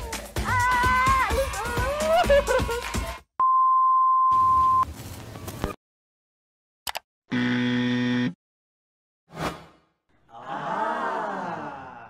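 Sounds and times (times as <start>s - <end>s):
background music: 0.0s - 3.2s
electronic beep tone: 3.4s - 4.8s.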